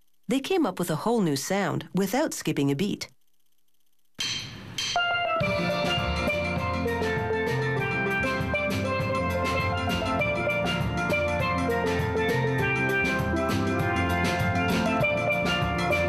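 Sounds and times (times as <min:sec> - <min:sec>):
drum beat: 0:04.1 - 0:16.0
steel band playing: 0:05.0 - 0:16.0.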